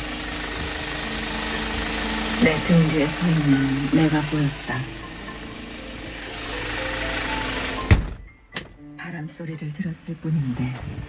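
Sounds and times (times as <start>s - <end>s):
truck engine running: 0.0s - 8.2s, 9.1s - 11.0s
cab door shutting: 7.6s - 8.8s.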